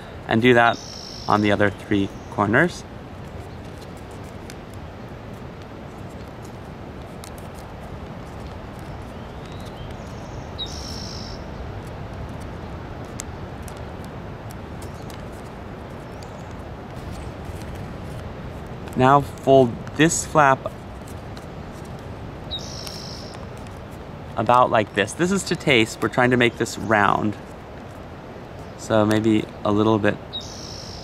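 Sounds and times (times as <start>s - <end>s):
low outdoor rush: 0.0s - 31.0s
high bird chirp: 0.7s - 2.6s, 9.0s - 11.6s, 22.5s - 23.5s, 30.3s - 31.0s
paper crinkling and folding: 3.2s - 10.2s, 11.8s - 22.2s, 22.8s - 26.0s.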